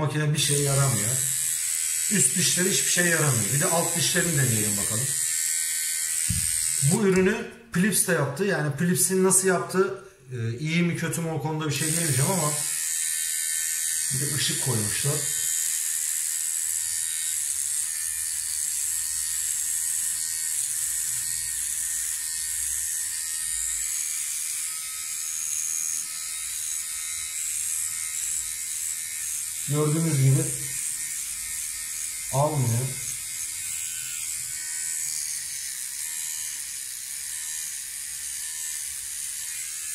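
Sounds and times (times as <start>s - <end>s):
beard trimmer buzzing: 0.0s - 8.1s, 8.9s - 39.9s.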